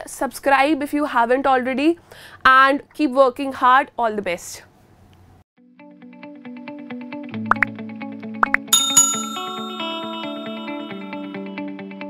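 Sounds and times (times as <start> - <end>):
bright ringing chime: 8.8 - 11.3
outro music: 8.8 - 11.3.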